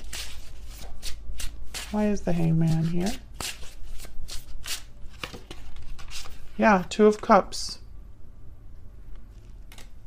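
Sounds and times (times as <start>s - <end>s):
cards being shuffled: 0.0s - 6.6s, 9.2s - 10.0s.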